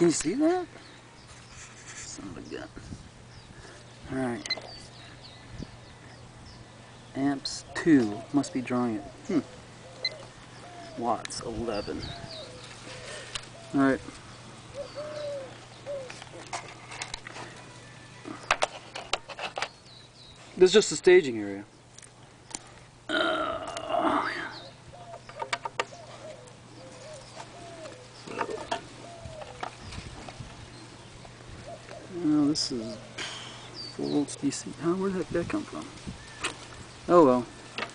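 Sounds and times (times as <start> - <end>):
dove cooing: 7.6 - 11.1, 11.8 - 18.5, 23.1 - 33.8.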